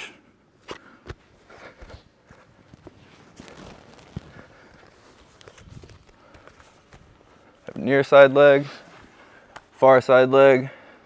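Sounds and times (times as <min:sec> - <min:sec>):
bodies shuffling on foam mats: 0:00.6 - 0:09.8.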